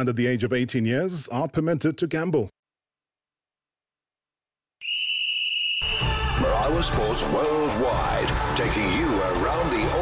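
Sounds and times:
high whistle blast: 4.8 - 6.5
jingle music: 5.8 - 10.0.

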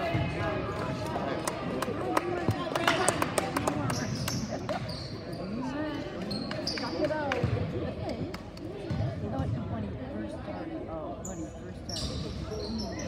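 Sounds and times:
sneaker squeaks: 3.9 - 7.2, 11.2 - 13.0.

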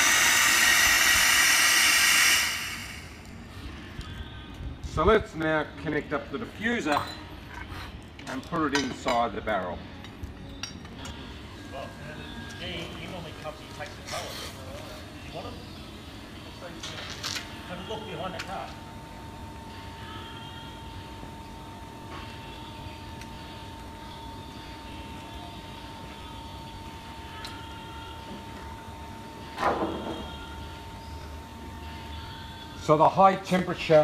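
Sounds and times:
steam cleaning machine running: 0.0 - 3.3.

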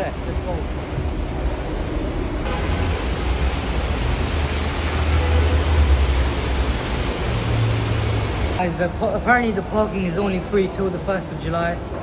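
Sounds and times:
water feature rushing: 2.4 - 8.9.

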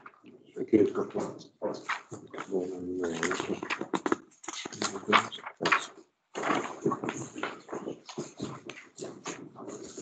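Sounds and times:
mumbled speech: 0.6 - 3.7, 4.6 - 5.9.

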